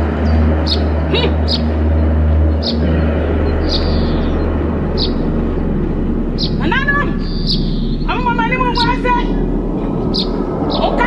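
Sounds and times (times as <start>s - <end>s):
small birds chirping: 0.0s - 11.0s
steady low rumble: 0.0s - 11.0s.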